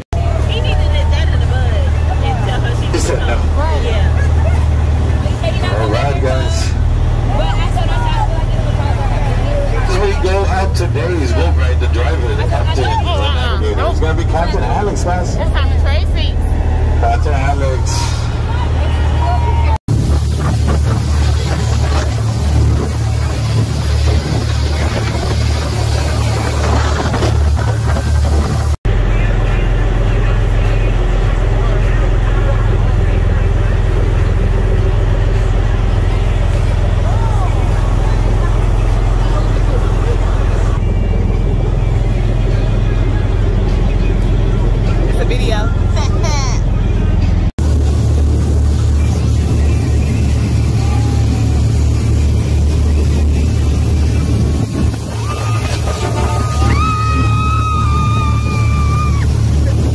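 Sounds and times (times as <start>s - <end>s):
speedboat running fast: 0.0s - 59.9s
wind rush on microphone: 19.9s - 28.8s
woman screaming: 56.4s - 59.4s.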